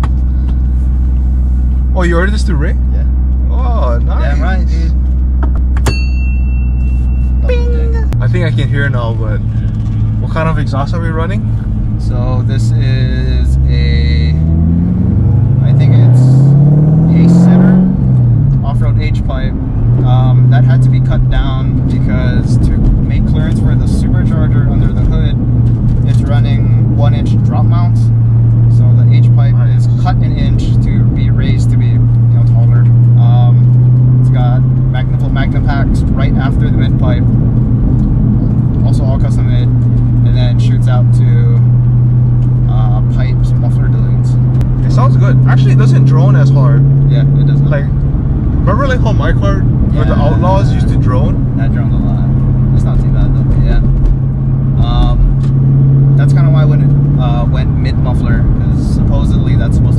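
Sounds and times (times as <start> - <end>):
car engine droning from cabin: 0.0 - 59.9.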